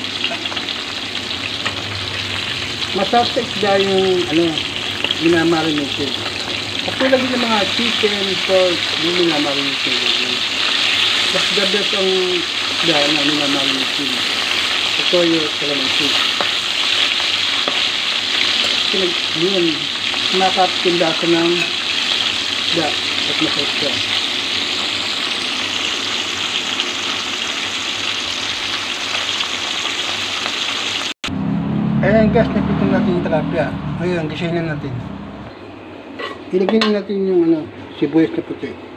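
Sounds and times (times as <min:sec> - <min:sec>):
fish sizzling in a wok: 0:00.0 - 0:31.2.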